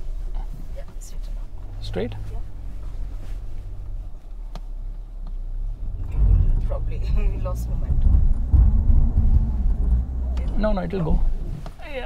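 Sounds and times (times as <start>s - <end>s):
car cabin rumble on rough track: 0.0s - 12.0s
sharp knock: 7.9s - 11.6s.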